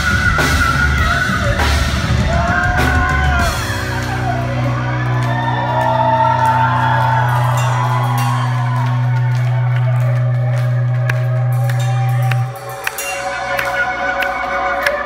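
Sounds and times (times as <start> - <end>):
person singing: 0.0 - 10.3
amplified guitar and bass note: 0.0 - 14.4
drums: 0.0 - 15.0.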